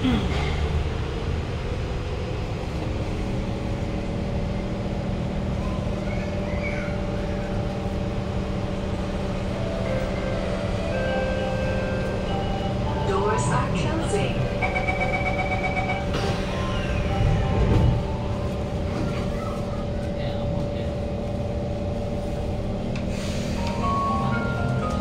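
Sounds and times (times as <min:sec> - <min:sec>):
wheels rumbling on track: 0:00.0 - 0:25.0
train motors whining: 0:02.5 - 0:25.0.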